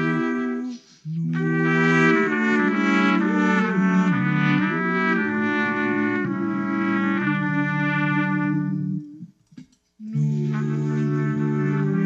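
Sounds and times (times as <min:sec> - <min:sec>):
trumpet playing slow melody: 0:00.0 - 0:09.3, 0:10.0 - 0:12.0.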